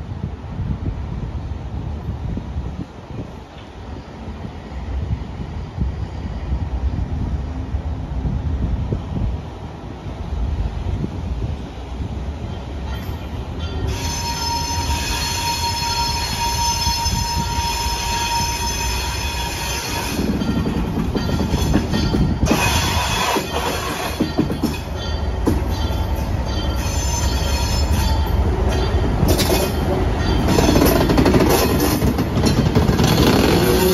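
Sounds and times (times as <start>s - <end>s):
diesel locomotive engine rumble: 0.0s - 33.9s
steel wheel squeal: 13.8s - 20.5s, 21.2s - 25.1s, 25.7s - 33.9s.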